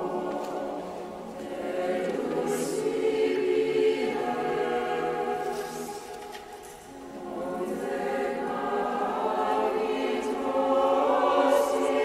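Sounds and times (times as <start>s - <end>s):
choir singing sustained notes: 0.0s - 12.0s.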